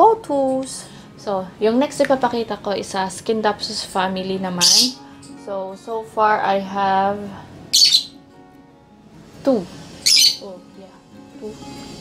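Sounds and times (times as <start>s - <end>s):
high-pitched bird squawk: 4.6s - 5.1s, 7.7s - 8.2s, 10.0s - 10.5s.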